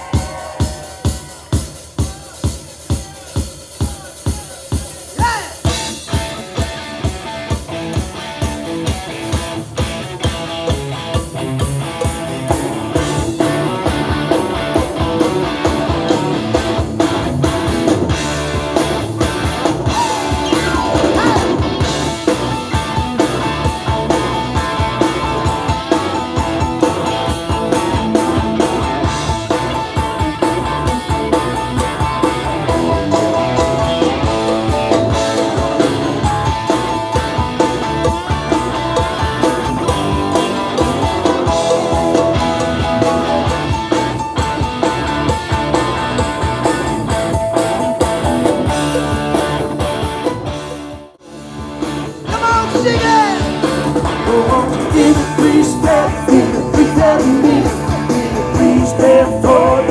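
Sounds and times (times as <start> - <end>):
drum kit: 0.0 - 59.9
electric guitars playing lead notes: 5.2 - 59.9.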